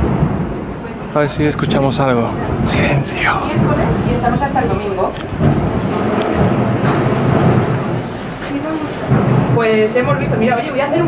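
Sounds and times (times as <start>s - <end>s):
street noise hum: 0.0s - 11.0s
nearby talk: 2.3s - 4.3s.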